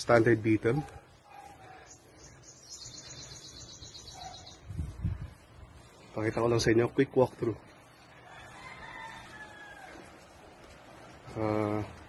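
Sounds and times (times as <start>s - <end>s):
bird trilling: 1.9s - 4.7s.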